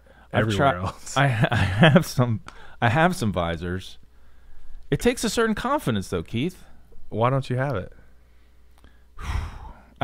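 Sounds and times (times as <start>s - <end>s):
man sighing: 9.2s - 10.0s.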